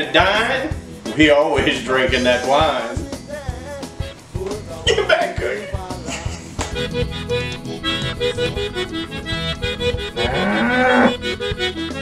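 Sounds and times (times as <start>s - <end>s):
accordion music: 0.0s - 12.0s
cow mooing: 7.2s - 11.4s.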